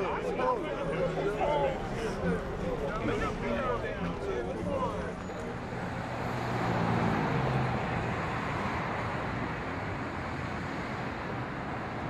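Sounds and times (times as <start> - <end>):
faint voices: 0.0 - 8.1
street traffic with engine hum: 0.0 - 12.0.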